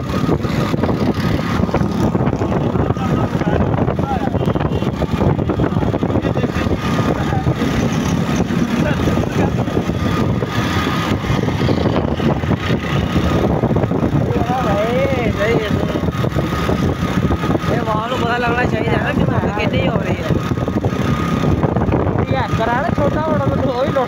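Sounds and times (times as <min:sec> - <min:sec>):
road traffic passing: 0:00.0 - 0:24.0
truck diesel engine passing: 0:00.0 - 0:24.0
person speaking: 0:17.6 - 0:20.5.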